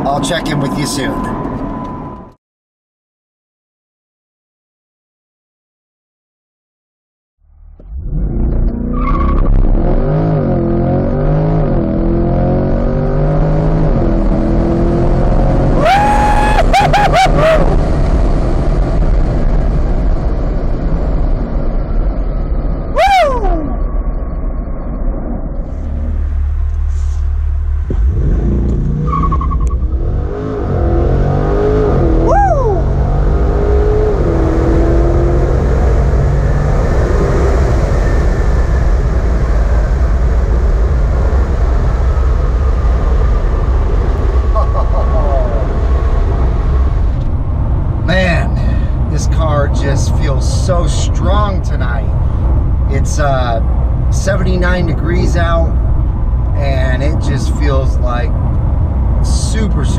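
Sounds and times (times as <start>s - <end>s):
car engine at full throttle: 7.5s - 59.9s.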